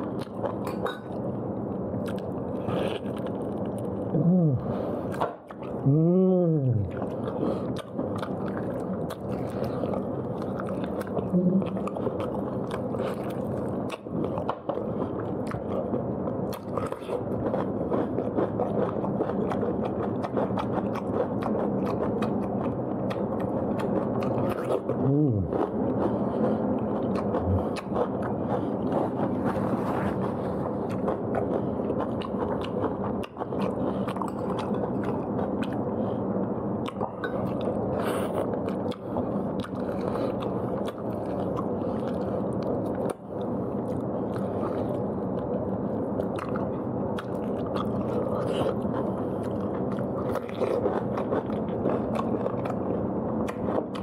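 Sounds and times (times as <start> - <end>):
person chewing and crunching food: 0.0 - 54.0.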